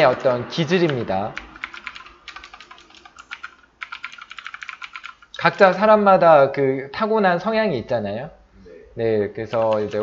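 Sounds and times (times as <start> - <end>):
computer keyboard typing: 0.6 - 5.7, 9.5 - 10.0.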